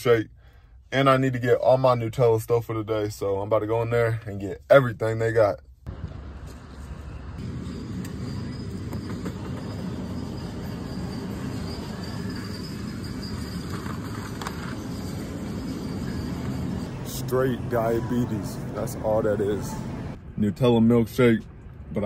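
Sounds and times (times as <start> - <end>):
faint high steady whine: 5.9 - 20.2.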